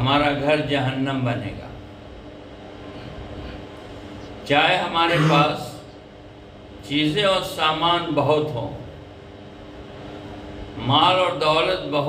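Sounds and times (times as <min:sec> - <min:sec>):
room noise rumble and hiss: 0:00.0 - 0:12.0.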